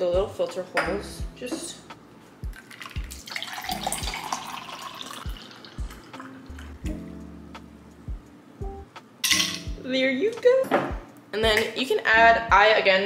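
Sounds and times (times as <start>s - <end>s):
background music with beat: 0.0s - 4.4s, 5.2s - 12.8s
coffee pouring into glass: 2.5s - 6.8s.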